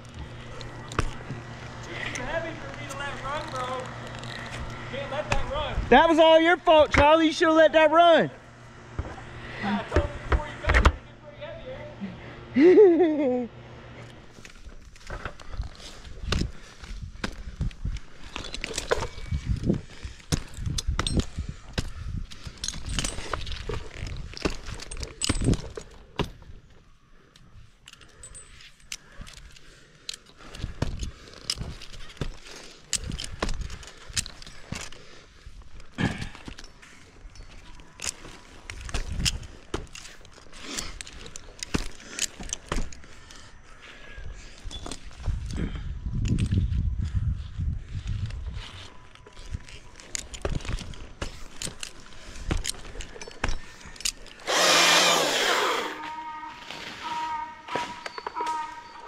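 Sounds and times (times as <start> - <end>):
rigging hardware clinking: 14.2 - 43.5, 49.0 - 55.7.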